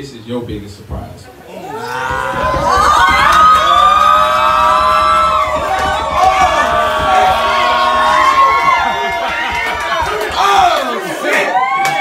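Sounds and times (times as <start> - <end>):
crowd screaming and cheering: 1.5 - 12.0.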